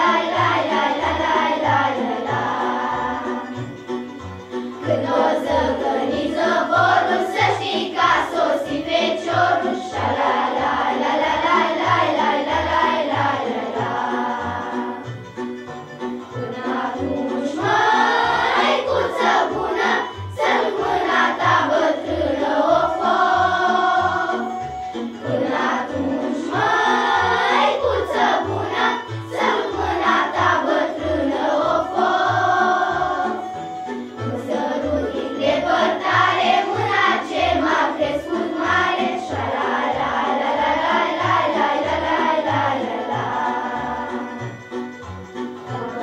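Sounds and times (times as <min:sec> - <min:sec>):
children's choir singing: 0:00.0 - 0:46.0.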